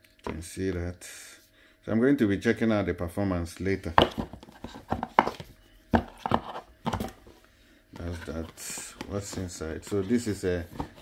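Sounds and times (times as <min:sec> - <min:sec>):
taps and knocks on packaging: 0:04.0 - 0:07.2.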